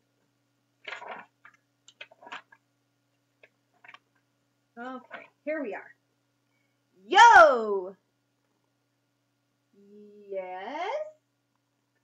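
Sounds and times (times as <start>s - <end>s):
faint electrical hum: 0.0s - 12.0s
book pages rustling: 0.8s - 2.6s, 3.4s - 4.2s.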